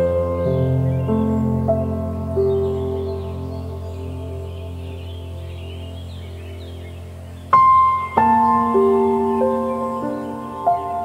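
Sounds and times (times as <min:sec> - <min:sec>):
soft held chord: 0:00.0 - 0:11.0.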